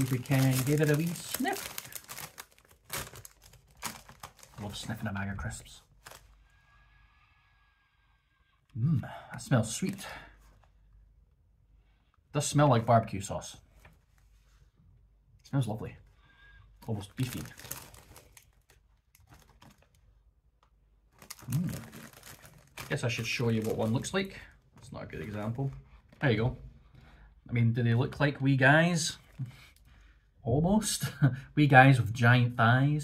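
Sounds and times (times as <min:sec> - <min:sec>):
crisp packet rustle: 0:00.0 - 0:05.0, 0:05.8 - 0:06.4, 0:16.9 - 0:20.0, 0:21.1 - 0:26.3.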